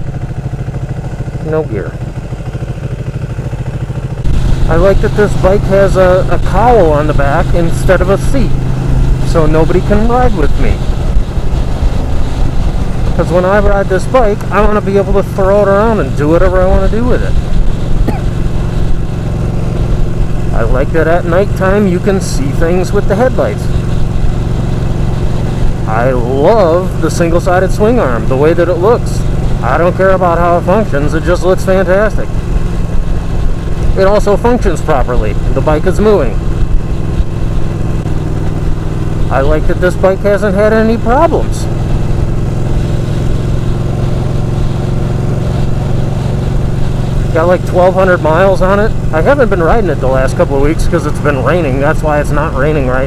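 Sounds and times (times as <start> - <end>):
motorcycle engine cruising: 0.0 - 53.0.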